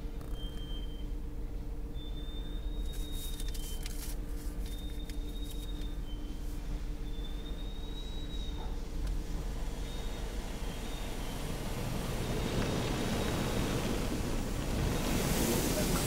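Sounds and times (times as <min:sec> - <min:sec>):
car wash machinery rumble: 0:00.0 - 0:16.0
thin high whistle: 0:00.3 - 0:01.2, 0:01.9 - 0:04.0, 0:04.6 - 0:08.8
hissing spray: 0:09.2 - 0:16.0.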